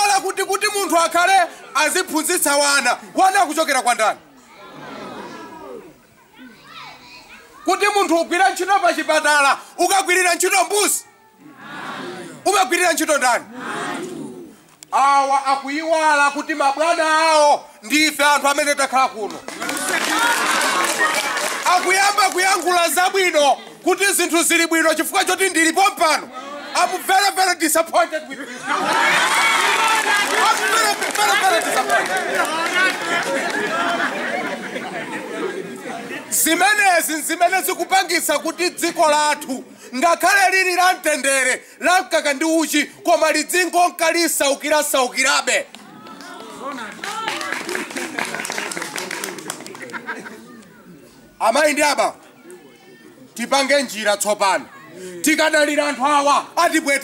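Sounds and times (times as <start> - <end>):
overlapping voices talking: 11.4 - 15.0, 17.7 - 39.8, 44.6 - 53.9
faint background voices: 45.5 - 53.9, 54.5 - 55.5.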